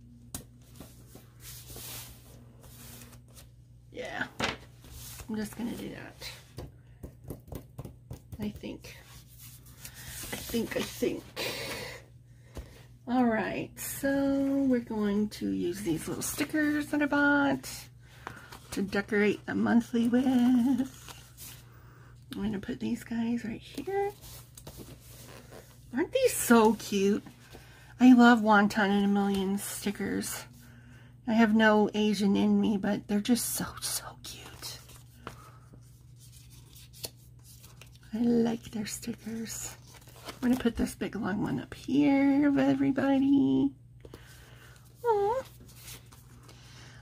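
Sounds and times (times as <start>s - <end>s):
low steady hum: 0.0s - 47.0s
paper and tape rustling: 23.7s - 27.6s, 34.4s - 41.0s, 45.0s - 46.6s.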